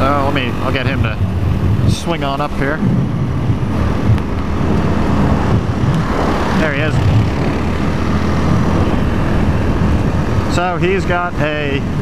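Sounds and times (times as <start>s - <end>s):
motorcycle engine running: 0.0s - 12.0s
wind rushing over microphone: 0.0s - 12.0s.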